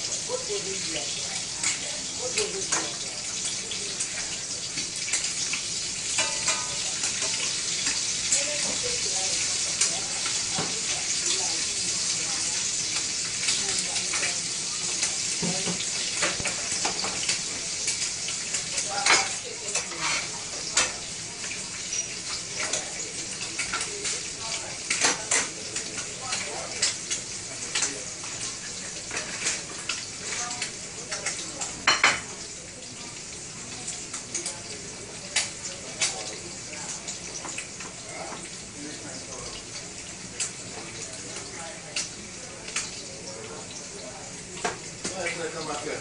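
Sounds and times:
food sizzling in a frying pan: 0:00.0 - 0:46.0
utensil clicking against pan: 0:01.6 - 0:11.3, 0:12.9 - 0:31.8, 0:33.9 - 0:36.4, 0:40.4 - 0:43.1.

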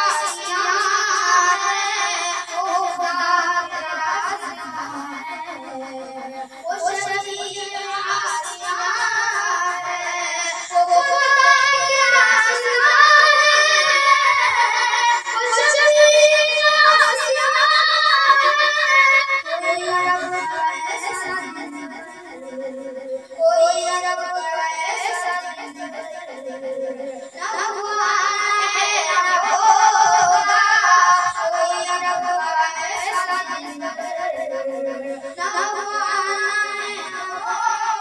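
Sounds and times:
boy singing devotional poem: 0:00.0 - 0:38.0.

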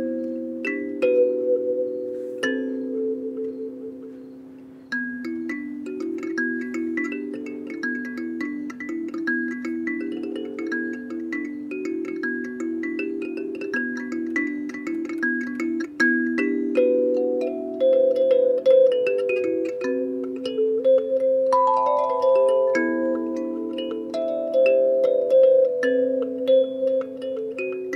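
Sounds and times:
kalimba plucked notes: 0:00.0 - 0:27.9.

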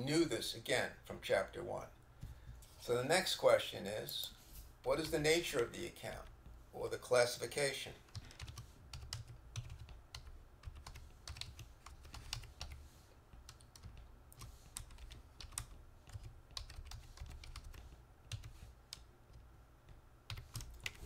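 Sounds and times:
low steady hum: 0:00.0 - 0:21.0
computer keyboard typing: 0:08.0 - 0:21.0.

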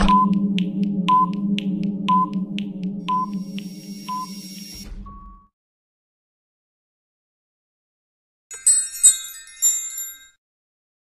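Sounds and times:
low steady hum: 0:00.0 - 0:04.8
higher longer beep: 0:00.0 - 0:05.4
stopwatch ticking: 0:00.1 - 0:04.4
short beeps: 0:03.1 - 0:05.5.

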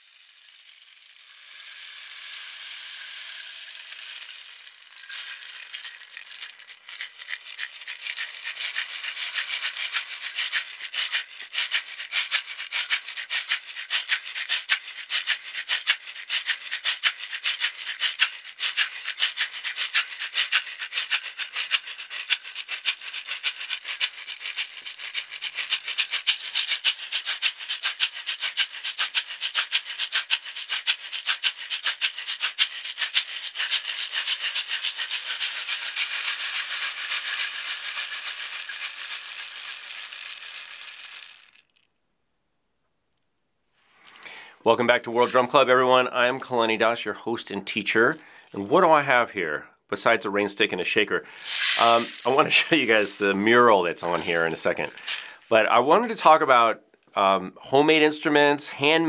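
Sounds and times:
rain stick: 0:00.0 - 0:41.9, 0:44.0 - 0:45.6, 0:51.3 - 0:56.4.

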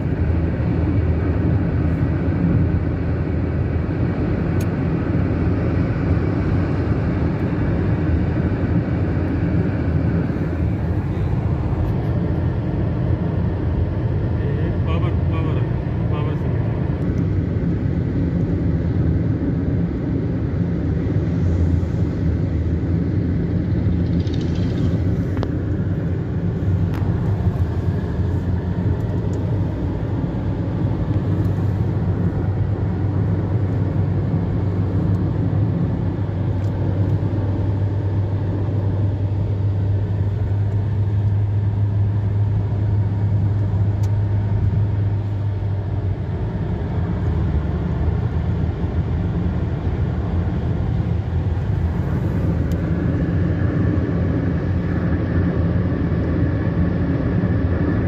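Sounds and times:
car engine and tyre drone: 0:00.0 - 0:58.0
low hum: 0:00.0 - 0:58.0.

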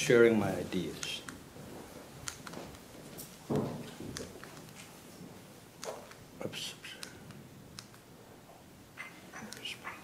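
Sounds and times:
man whispering: 0:06.4 - 0:07.3, 0:09.3 - 0:10.0.

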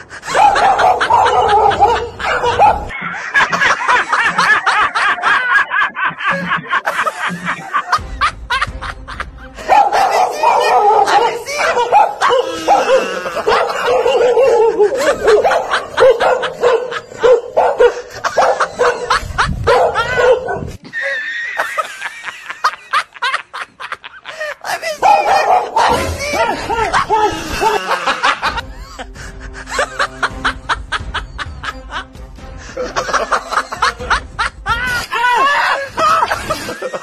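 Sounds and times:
laughter: 0:00.0 - 0:37.0
dog-like barks: 0:00.3 - 0:03.0, 0:09.6 - 0:20.7, 0:25.0 - 0:27.3
music: 0:06.9 - 0:17.2, 0:25.9 - 0:37.0.

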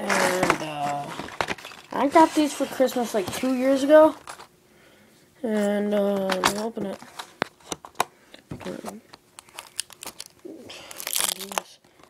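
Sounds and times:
packaging crinkling and tearing: 0:00.0 - 0:04.5, 0:09.4 - 0:12.0.

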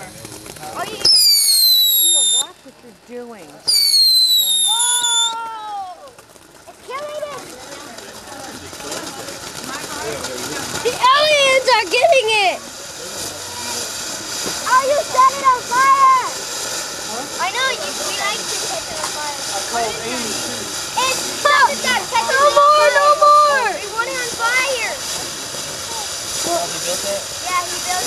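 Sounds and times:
firework fountain hissing: 0:00.0 - 0:28.0
falling firework whistle: 0:00.8 - 0:02.6, 0:03.6 - 0:06.5, 0:08.8 - 0:28.0
people shouting: 0:21.0 - 0:24.8.

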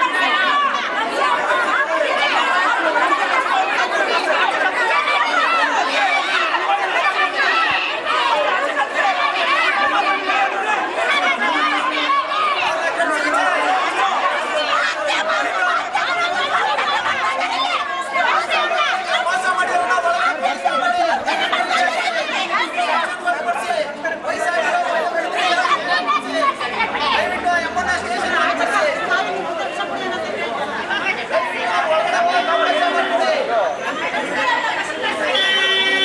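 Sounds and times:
crowd shouting and arguing: 0:00.0 - 0:36.0.

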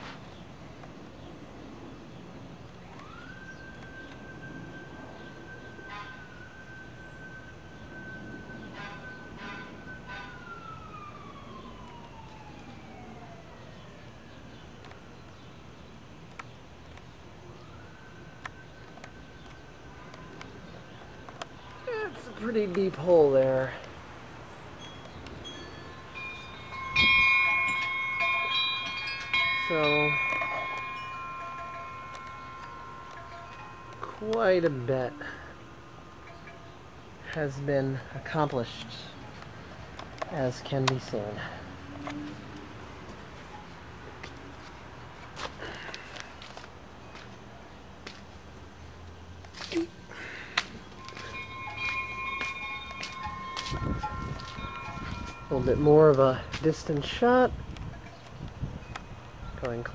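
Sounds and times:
wind chimes ringing: 0:03.7 - 0:10.3, 0:21.3 - 0:39.2, 0:50.0 - 0:59.9
footsteps on soil: 0:50.5 - 0:55.5, 0:56.4 - 0:56.7.

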